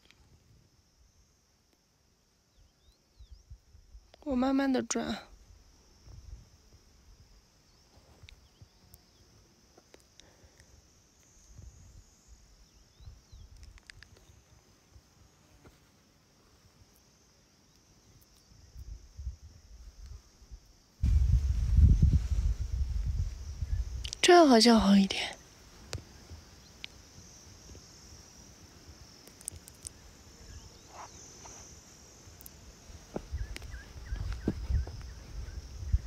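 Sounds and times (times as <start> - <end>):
high-pitched insect hum: 0.0 - 36.0
wind buffeting microphone: 21.0 - 24.3, 33.1 - 36.0.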